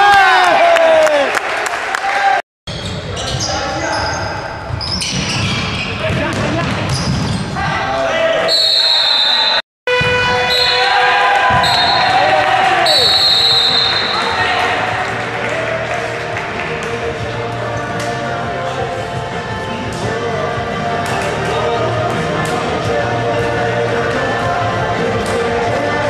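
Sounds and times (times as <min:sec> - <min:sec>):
shoe squeaks: 0:02.7 - 0:06.2, 0:06.9 - 0:07.6
players shouting: 0:07.6 - 0:16.8.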